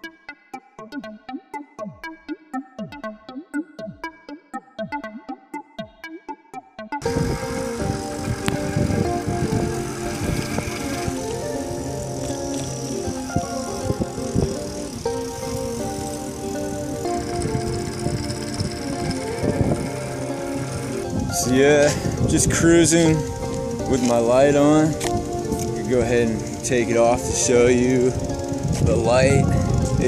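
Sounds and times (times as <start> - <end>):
background music: 0.0 - 30.0
wind buffeting microphone: 7.0 - 30.0.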